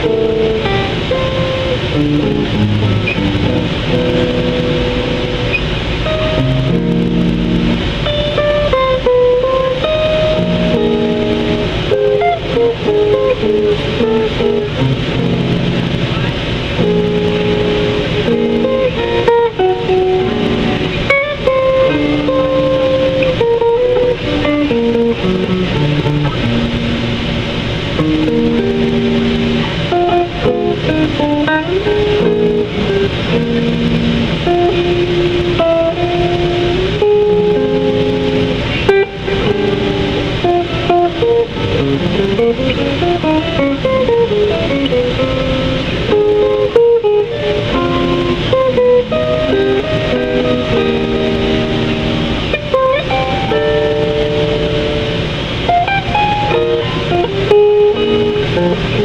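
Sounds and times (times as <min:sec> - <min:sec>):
electric guitar melody and chords: 0:00.0 - 0:59.0.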